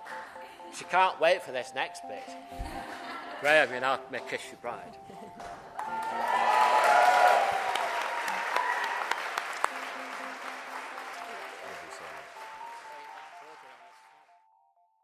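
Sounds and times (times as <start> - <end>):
music: 0.0 - 15.0
congregation applauding: 5.4 - 14.3.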